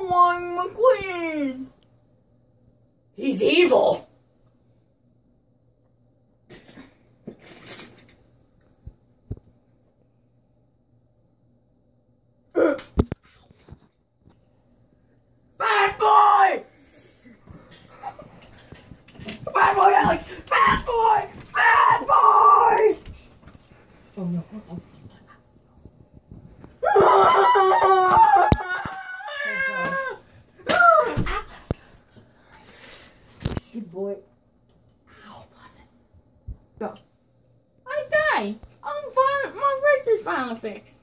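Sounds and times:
child screaming: 0:15.6 - 0:16.7, 0:19.4 - 0:23.0, 0:26.8 - 0:31.4.

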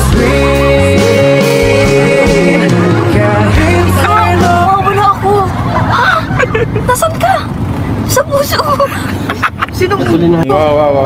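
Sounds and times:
people talking and exclaiming: 0:00.0 - 0:11.0.

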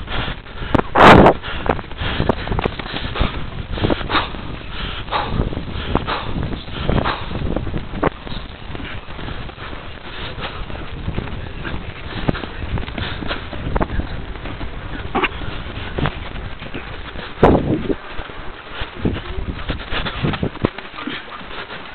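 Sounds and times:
wind rumble on microphone: 0:00.0 - 0:21.9
horse knocks and rustles: 0:00.7 - 0:21.9.

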